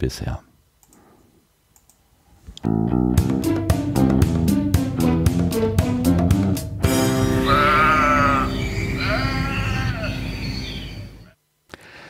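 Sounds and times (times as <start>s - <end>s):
sheep bleating: 7.3s - 10.2s.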